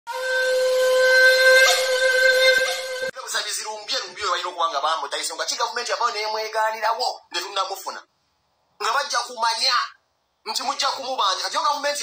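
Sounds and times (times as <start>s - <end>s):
long steady horn-like note: 0.1s - 3.2s.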